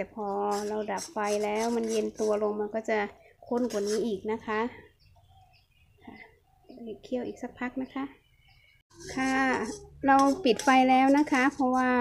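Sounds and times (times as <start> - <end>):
low bird calls: 3.1 - 10.6.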